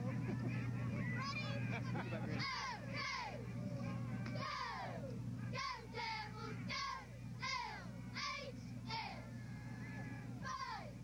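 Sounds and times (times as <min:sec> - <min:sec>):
low hum: 0:00.0 - 0:11.0
cheerleaders shouting a cheer: 0:02.3 - 0:03.5, 0:04.3 - 0:11.0.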